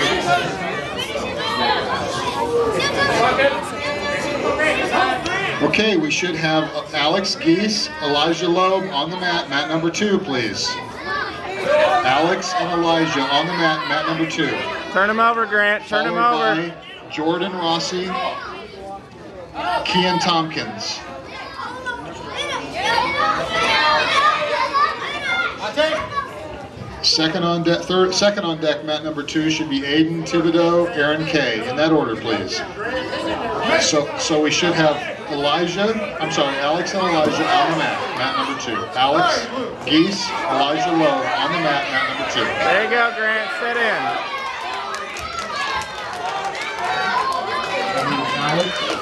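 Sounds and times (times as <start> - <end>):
children shouting and calling: 0.0 - 5.8, 6.6 - 15.0, 16.0 - 19.0, 19.6 - 27.0, 37.0 - 49.0
chatter of many voices: 0.0 - 49.0.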